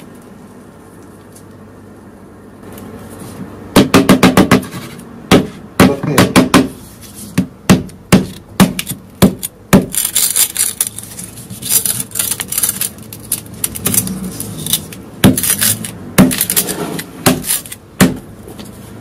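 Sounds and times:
knife striking glass screen: 11.8s - 17.8s.

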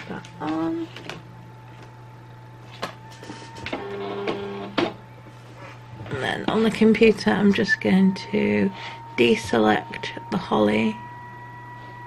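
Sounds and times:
feed motor whirring: 3.0s - 5.0s.

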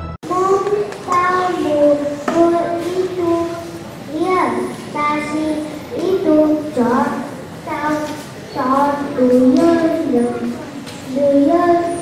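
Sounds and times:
child singing into a microphone: 0.3s - 12.0s.

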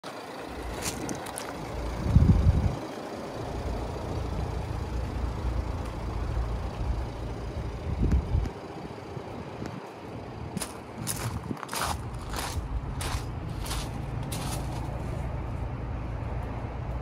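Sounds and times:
wind buffeting microphone: 1.8s - 2.8s, 7.7s - 13.8s.

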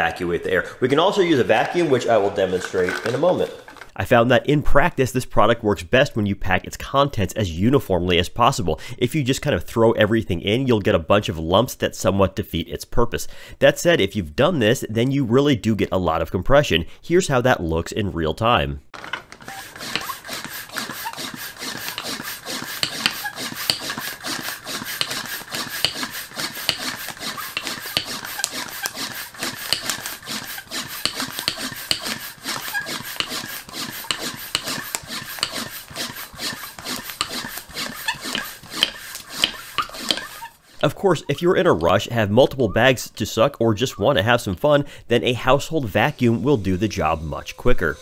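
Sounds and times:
hand air pump strokes: 1.2s - 4.0s, 19.2s - 42.0s, 45.6s - 48.0s.

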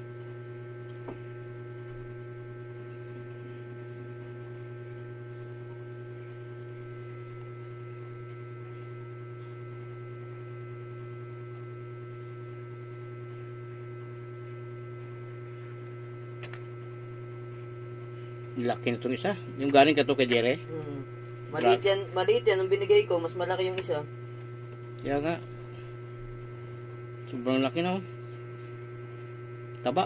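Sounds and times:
steady electrical hum: 0.0s - 30.0s.

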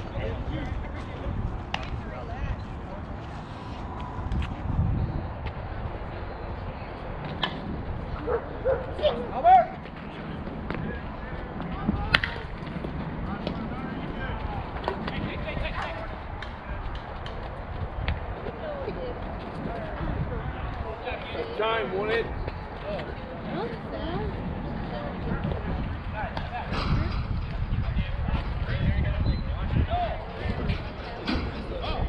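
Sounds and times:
players calling and shouting: 5.4s - 32.0s.

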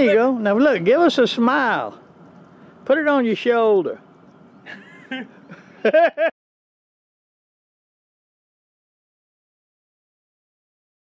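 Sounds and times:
faint outdoor background: 0.0s - 6.4s
person laughing: 4.6s - 6.4s.

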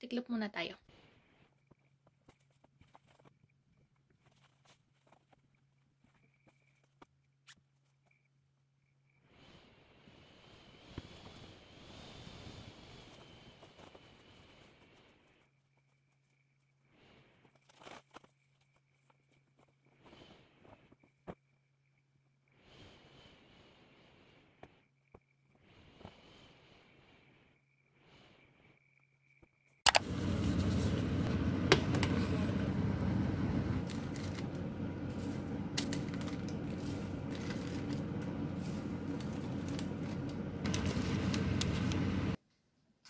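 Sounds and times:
kitchen cooking noise: 29.9s - 42.4s
low steady hum: 29.9s - 42.4s.

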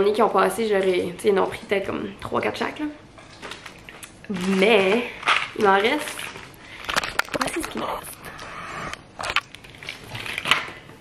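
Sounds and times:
wrapped candy bars rustling: 3.1s - 11.0s.

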